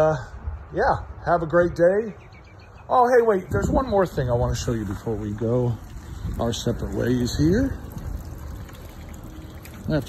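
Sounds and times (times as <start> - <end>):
outdoor rumble and hiss: 0.0 - 10.0.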